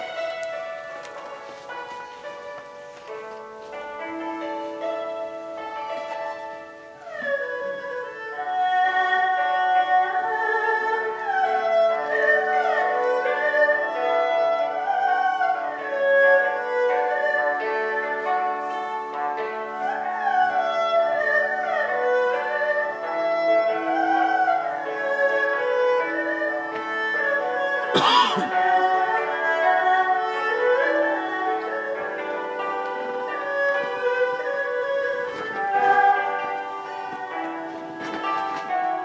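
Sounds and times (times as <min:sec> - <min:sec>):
erhu melody with sliding notes: 0:00.0 - 0:39.0
hammered dulcimer accompaniment: 0:00.0 - 0:39.0.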